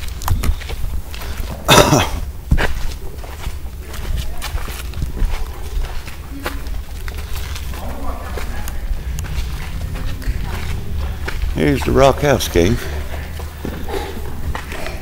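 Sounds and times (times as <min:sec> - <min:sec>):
footsteps walking: 0:00.0 - 0:15.0
handheld camera low rumble: 0:00.0 - 0:15.0
faint voices: 0:01.4 - 0:15.0.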